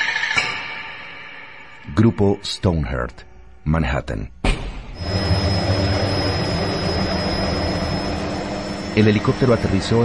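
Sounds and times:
helicopter engine turbine whine: 0:05.0 - 0:10.0.

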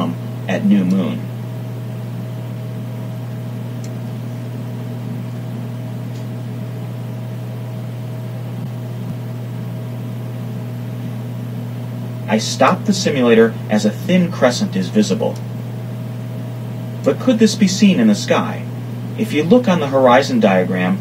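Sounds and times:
low electrical hum: 0:00.0 - 0:21.0.

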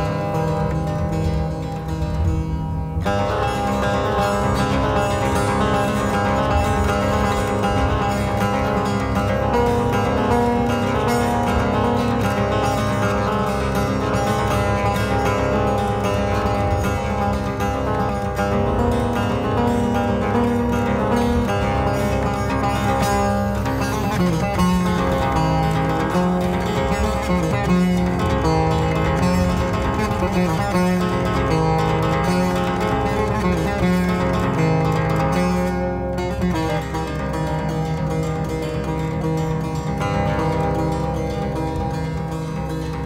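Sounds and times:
plucked lute melody: 0:00.0 - 0:43.0.

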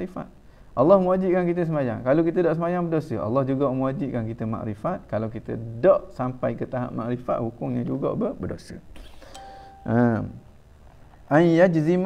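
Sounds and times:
faint steady tone: 0:09.2 - 0:10.6.

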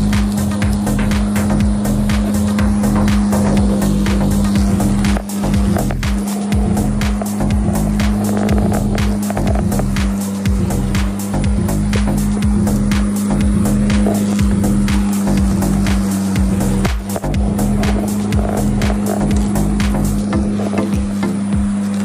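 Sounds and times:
background music: 0:00.0 - 0:22.0
lawn mower running: 0:00.0 - 0:22.0.

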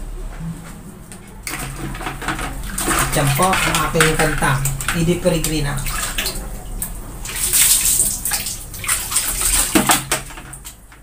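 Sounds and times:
water sloshing in basin: 0:01.4 - 0:10.9.

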